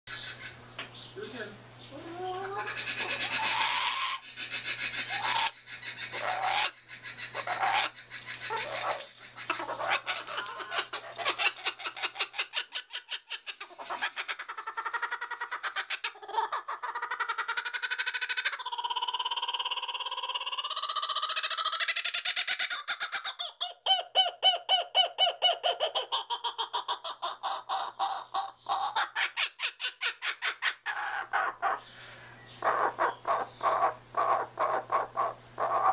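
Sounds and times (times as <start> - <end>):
kookaburra laughing call: 2.3 - 31.8, 32.6 - 35.9.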